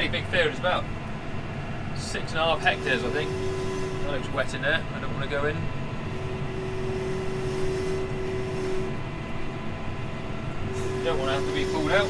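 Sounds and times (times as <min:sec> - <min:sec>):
steady whine: 0:00.0 - 0:12.0
tractor engine running under load: 0:00.0 - 0:12.0.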